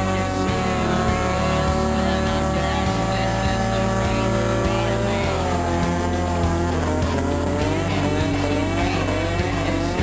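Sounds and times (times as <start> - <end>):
background music with bass: 0.0 - 10.0
car engine at high revs: 0.0 - 10.0.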